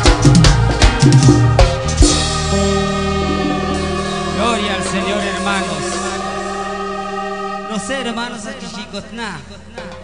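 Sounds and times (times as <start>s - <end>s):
sustained keyboard chord: 1.4s - 10.0s
voices singing: 2.1s - 10.0s.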